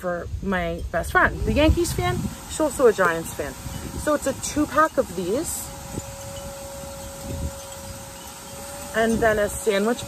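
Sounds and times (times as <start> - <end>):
outdoor background hiss: 0.0 - 10.0
steady ringing note: 0.7 - 10.0.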